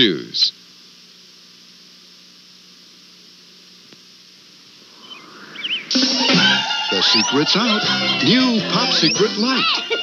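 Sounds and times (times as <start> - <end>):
tape hiss and static: 0.0 - 10.0.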